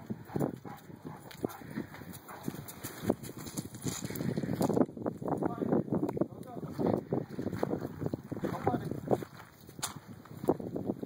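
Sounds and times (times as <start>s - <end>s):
dog footfalls on concrete and gravel: 0.0s - 4.8s, 7.5s - 10.7s
person walking on gravel: 0.4s - 5.0s, 6.4s - 10.9s.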